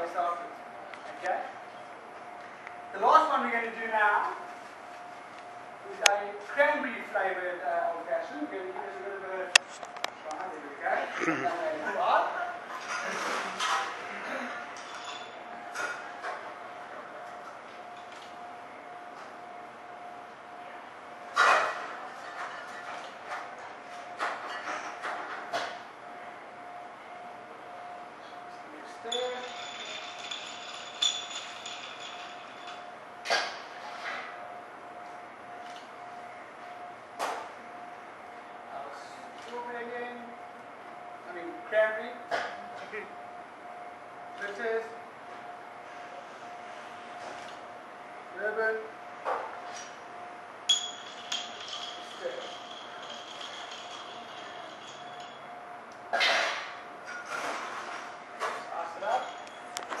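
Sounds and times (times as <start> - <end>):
glassware knocking and clinking: 29.1 - 32.9, 50.7 - 55.5.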